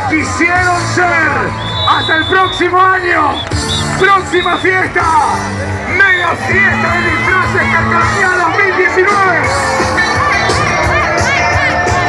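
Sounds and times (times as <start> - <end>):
crowd cheering and shouting: 0.0 - 12.0
loud music: 0.0 - 12.0.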